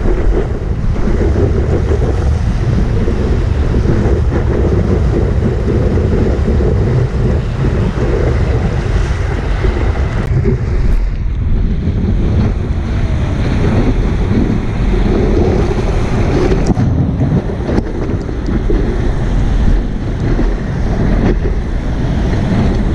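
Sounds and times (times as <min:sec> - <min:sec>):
breaking whitewater rushing: 0:00.0 - 0:22.9
wind buffeting microphone: 0:00.0 - 0:22.9.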